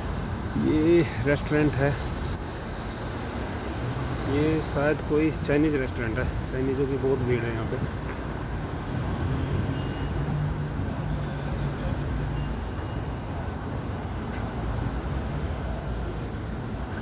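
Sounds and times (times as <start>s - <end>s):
city street traffic: 0.0s - 17.0s.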